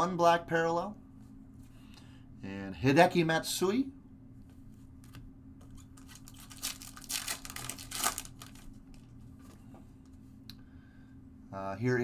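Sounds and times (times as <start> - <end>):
wrapper tearing and crinkling: 6.0 - 9.1.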